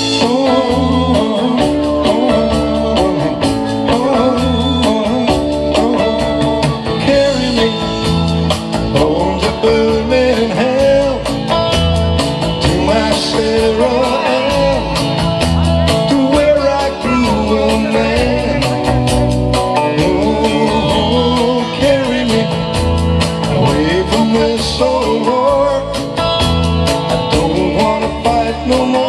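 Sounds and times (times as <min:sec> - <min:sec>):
electric guitar bending notes: 0:00.0 - 0:29.0
rock band playing live: 0:00.0 - 0:29.0.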